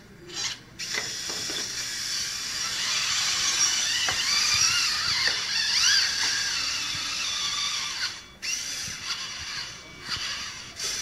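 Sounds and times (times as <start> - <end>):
electric motors whining: 0.1 - 11.0.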